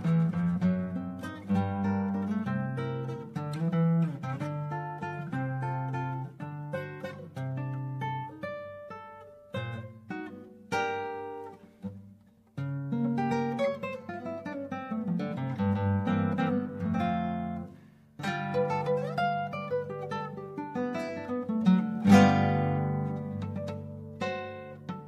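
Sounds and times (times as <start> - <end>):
fingerpicked classical guitar: 0.0 - 25.0.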